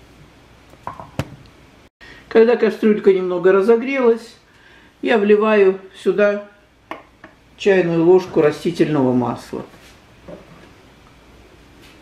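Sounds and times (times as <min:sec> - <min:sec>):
low steady background hiss: 0:00.0 - 0:12.0.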